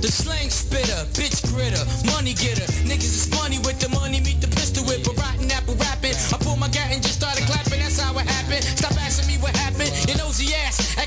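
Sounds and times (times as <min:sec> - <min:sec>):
deep bass line: 0:00.0 - 0:11.0
drums: 0:00.0 - 0:11.0
rapping over a beat: 0:00.0 - 0:11.0.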